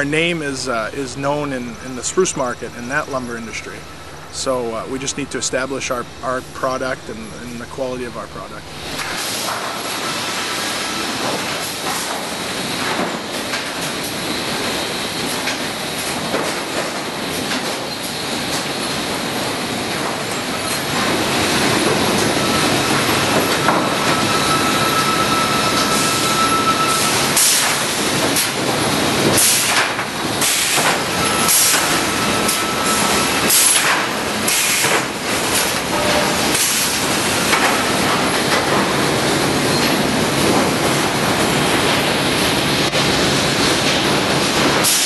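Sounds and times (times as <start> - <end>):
sawmill machinery clatter and rumble: 0.0 - 45.0.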